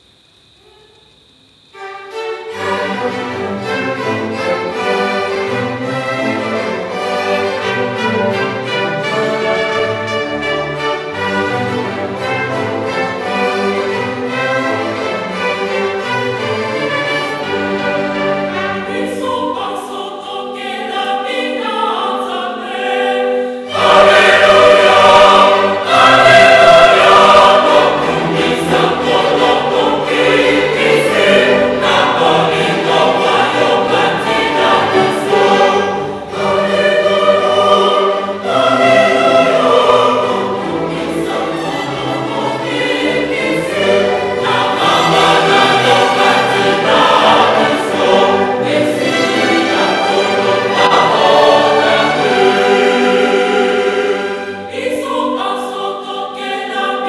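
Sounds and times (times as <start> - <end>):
choir singing: 1.8 - 57.0
string orchestra: 1.8 - 57.0.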